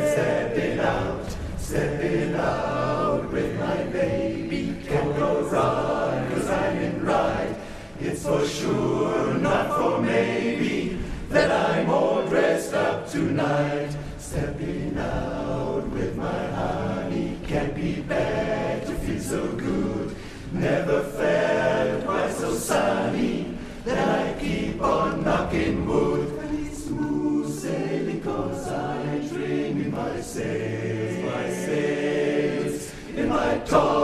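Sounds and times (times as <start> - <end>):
men's chorus singing a cappella: 0.0 - 34.0.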